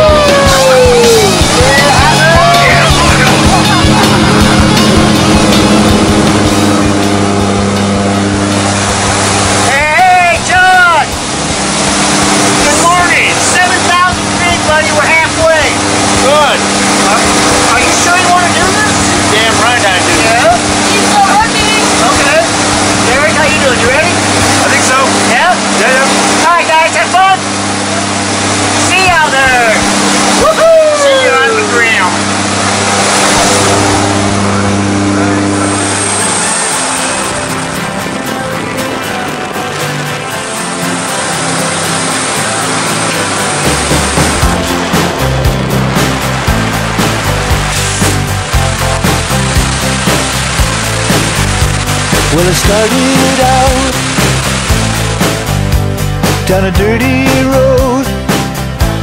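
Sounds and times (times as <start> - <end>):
voices calling: 0.0 - 5.9
music with a beat: 0.0 - 8.6, 36.7 - 59.0
airplane engine drone: 0.0 - 56.8.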